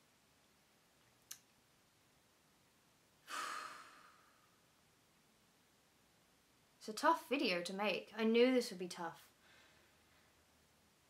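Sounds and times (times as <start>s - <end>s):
woman sighing: 3.3s - 4.5s.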